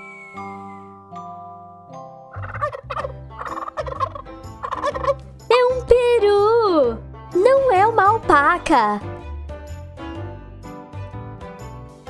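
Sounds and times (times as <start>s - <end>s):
turkey gobbling: 2.3s - 5.2s.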